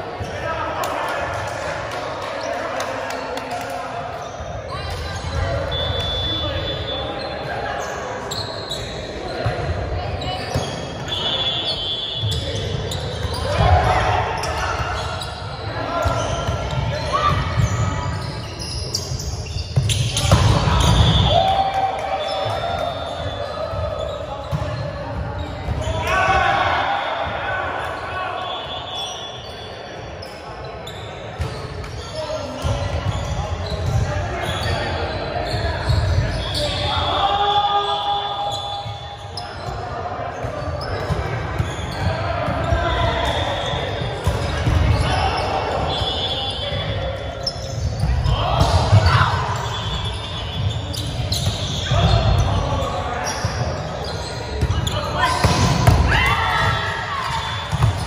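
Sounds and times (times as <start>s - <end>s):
players shouting: 25.8s - 29.3s, 51.6s - 58.0s.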